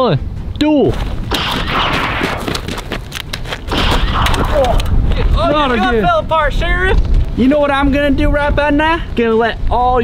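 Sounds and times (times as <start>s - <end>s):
rapid gunshot bursts: 1.3s - 2.6s, 3.7s - 4.6s.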